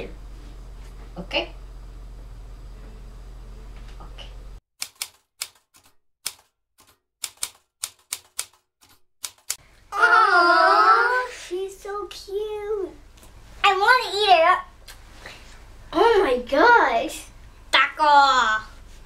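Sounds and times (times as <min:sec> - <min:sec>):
typewriter key clacks: 0:04.8 - 0:09.6
child's high wavering voice: 0:09.9 - 0:11.8.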